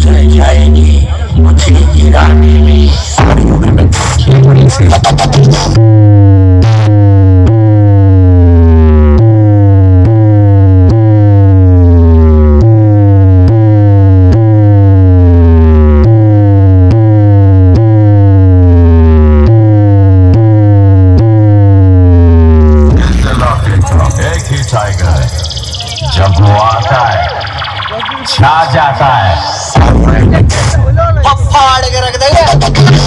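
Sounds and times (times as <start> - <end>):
deep sustained bass notes: 0.0 - 33.0
falling siren-like synth tone: 23.9 - 29.8.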